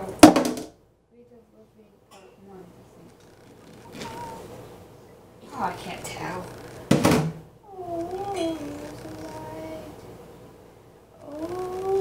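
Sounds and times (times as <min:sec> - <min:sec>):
high-pitched vocal notes: 0:07.7 - 0:10.0, 0:11.2 - 0:12.0.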